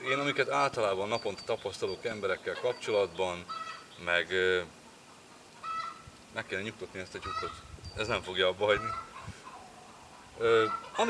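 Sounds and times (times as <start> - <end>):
hen cackling: 2.4 - 4.0, 4.7 - 6.2, 7.1 - 7.7, 8.6 - 11.0.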